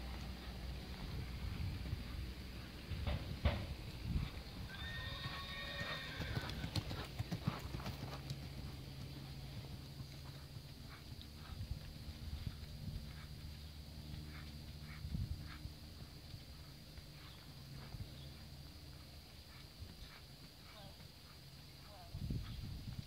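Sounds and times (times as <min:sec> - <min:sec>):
hoofbeats on soft dirt: 0:00.0 - 0:23.0
horse whinnying: 0:04.7 - 0:06.7.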